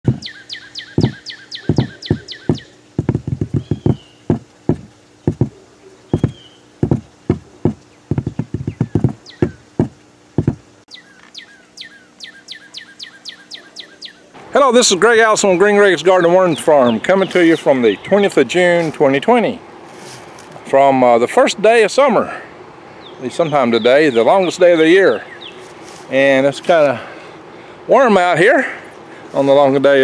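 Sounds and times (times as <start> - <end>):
bird singing falling high notes: 0.1 - 2.8
loud irregular knocks: 1.0 - 5.6, 6.2 - 10.7.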